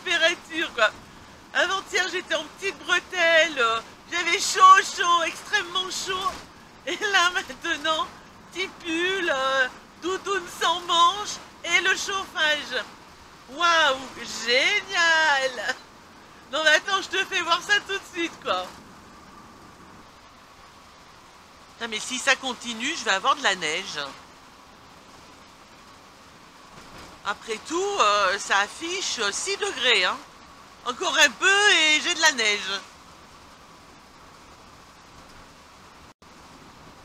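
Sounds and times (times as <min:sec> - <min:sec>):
engine noise: 0:00.0 - 0:37.0
tyres on wet road: 0:00.0 - 0:37.0.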